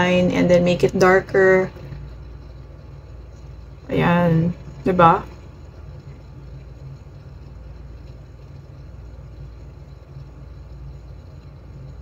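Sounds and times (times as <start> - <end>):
low room rumble and hum: 0.0 - 12.0.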